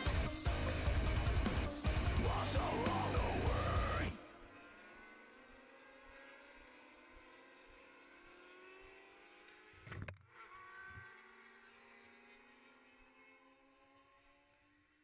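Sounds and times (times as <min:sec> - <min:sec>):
distant racing motorcycles: 0:00.0 - 0:15.0.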